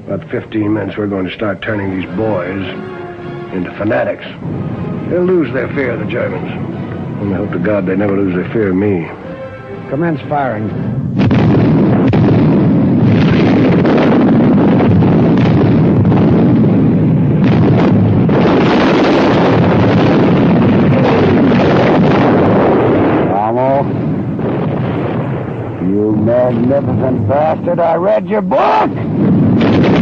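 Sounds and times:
explosions: 0:09.9 - 0:30.0
artillery guns firing: 0:11.2 - 0:27.0, 0:28.6 - 0:30.0.

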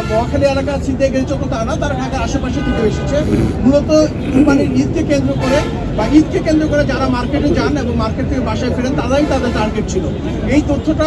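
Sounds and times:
man speaking: 0:02.6 - 0:07.6.

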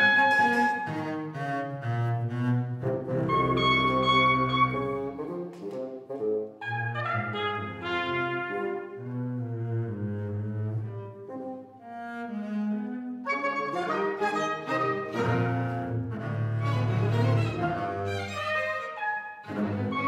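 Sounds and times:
solo double bass: 0:00.0 - 0:18.7
baroque orchestra: 0:00.0 - 0:20.0.

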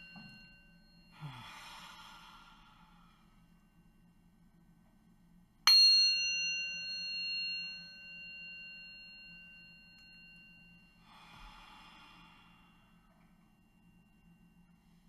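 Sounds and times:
meditation bell ringing: 0:00.0 - 0:04.8, 0:05.6 - 0:15.0
soft slow out-breath: 0:01.1 - 0:03.6, 0:11.0 - 0:13.5.

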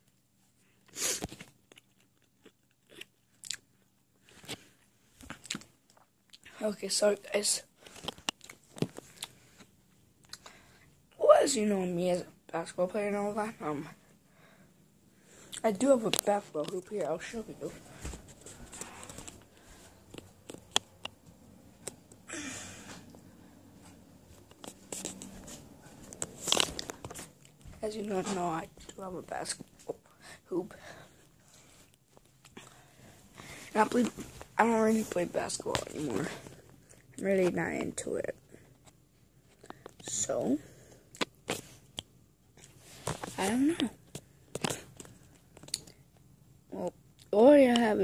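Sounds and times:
crunching and chewing food: 0:00.0 - 0:06.6, 0:07.8 - 0:10.6, 0:17.9 - 0:22.2, 0:24.3 - 0:27.8, 0:44.0 - 0:46.3.

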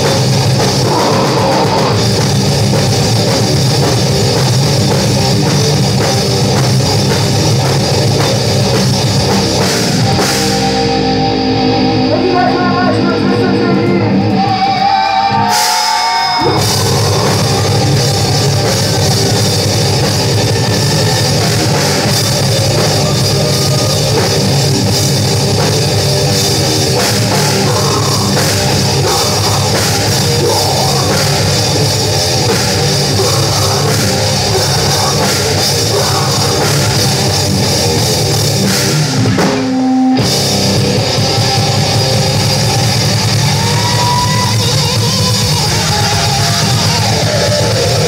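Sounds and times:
heavy metal band playing live: 0:00.0 - 0:48.0.

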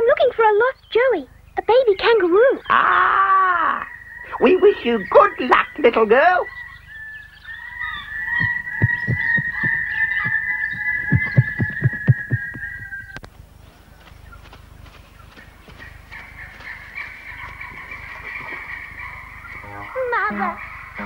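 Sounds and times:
soft low wingbeat thumps: 0:08.3 - 0:13.3
held high tone: 0:08.4 - 0:13.2.

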